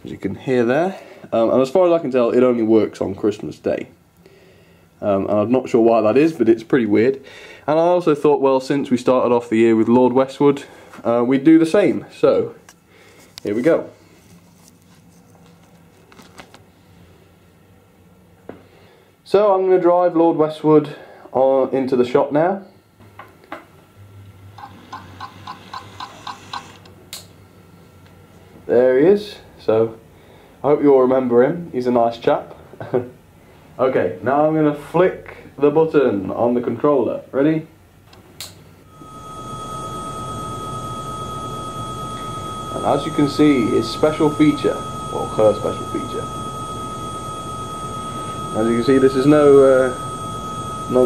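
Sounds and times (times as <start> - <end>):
electric hum with high whine: 0.0 - 51.0
low steady hum: 26.8 - 51.0.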